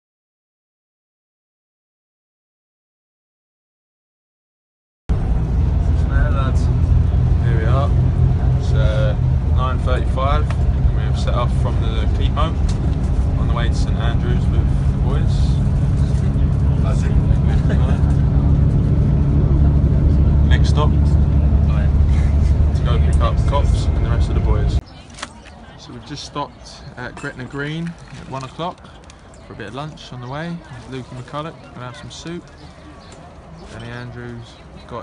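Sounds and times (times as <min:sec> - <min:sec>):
coach engine and road rumble: 0:05.1 - 0:35.0
men talking: 0:05.8 - 0:24.8, 0:25.8 - 0:32.9, 0:33.6 - 0:35.0.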